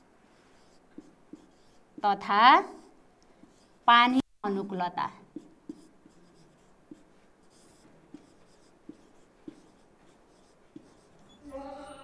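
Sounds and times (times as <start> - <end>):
marker scratching on whiteboard: 0.0 - 11.5
marker tip tapping whiteboard: 8.1 - 9.8.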